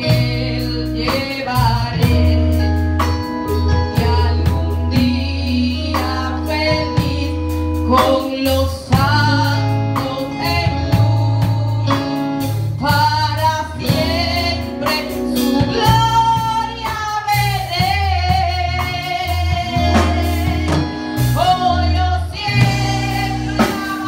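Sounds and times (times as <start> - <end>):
drum kit: 0.0 - 24.0
keyboard: 0.0 - 24.0
low bass notes: 0.0 - 24.0
woman singing into microphone: 0.0 - 24.0.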